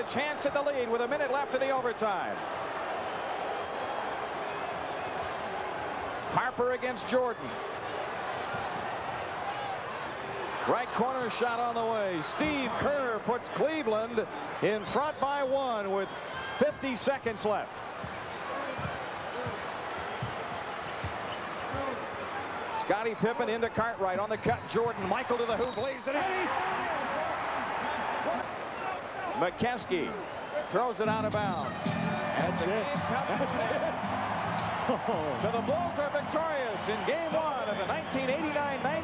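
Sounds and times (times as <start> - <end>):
arena crowd noise: 0.0 - 39.0
basketball bouncing on hardwood: 18.0 - 19.6, 20.2 - 21.9.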